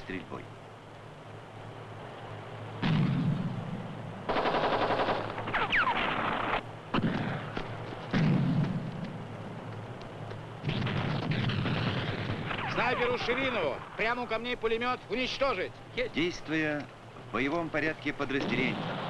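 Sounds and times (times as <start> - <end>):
automatic gunfire bursts: 4.3 - 7.4.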